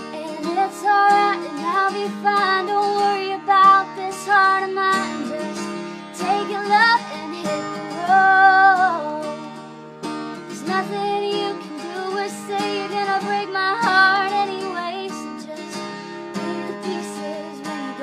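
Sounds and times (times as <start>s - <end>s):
person singing: 0.0s - 9.5s, 10.6s - 18.0s
acoustic guitar: 0.0s - 18.0s.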